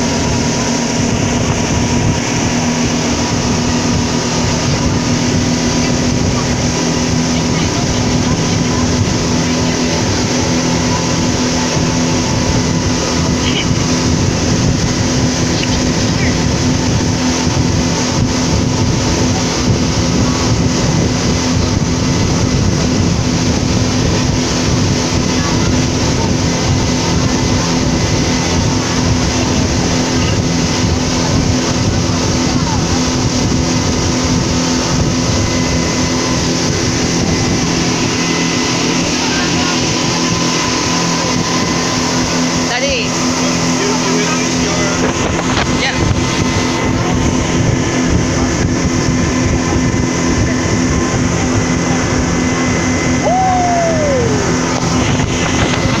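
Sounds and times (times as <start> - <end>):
speedboat engine drone: 0.0 - 56.0
water rushing along hull: 0.0 - 56.0.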